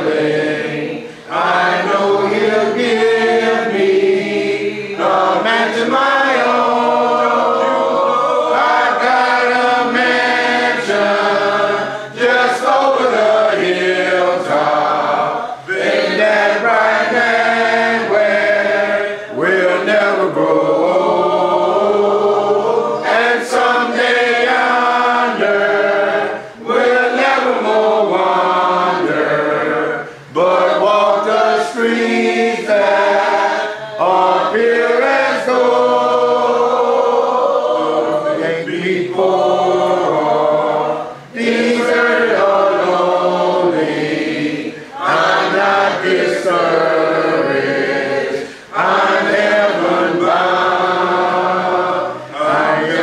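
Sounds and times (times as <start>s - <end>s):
congregation singing a cappella: 0.0s - 53.0s
singers breathing: 1.0s - 1.3s, 44.7s - 45.0s, 48.4s - 48.8s.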